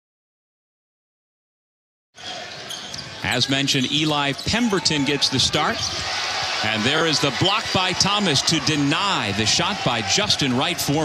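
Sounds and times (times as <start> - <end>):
arena crowd noise: 2.2 - 11.0.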